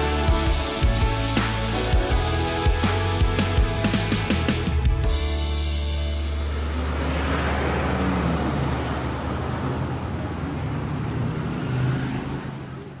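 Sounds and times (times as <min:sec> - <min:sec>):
road traffic: 0:00.0 - 0:13.0.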